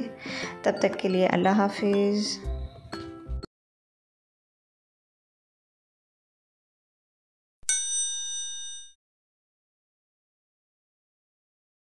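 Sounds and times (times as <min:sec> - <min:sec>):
bright bell-like ding: 0:07.7 - 0:08.9.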